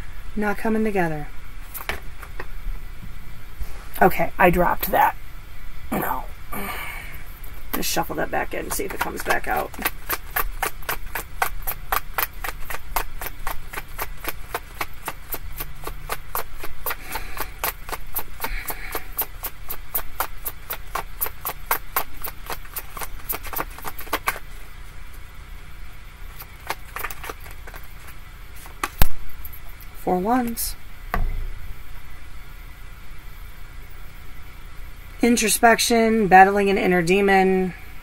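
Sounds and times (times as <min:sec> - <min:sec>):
cards being shuffled: 0:01.6 - 0:02.5, 0:07.8 - 0:24.6, 0:26.3 - 0:29.9.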